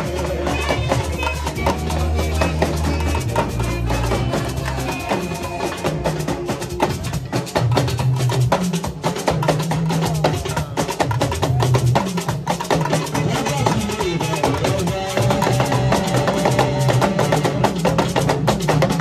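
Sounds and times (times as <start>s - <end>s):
talking drums playing fast: 0.0s - 19.0s.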